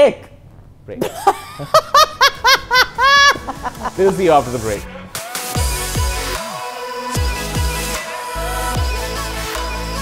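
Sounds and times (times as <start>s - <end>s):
woman laughing: 1.0s - 4.2s.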